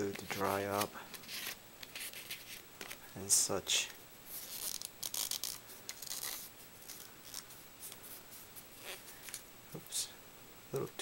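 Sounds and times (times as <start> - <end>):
paper rustling and crinkling: 0.0 - 3.0.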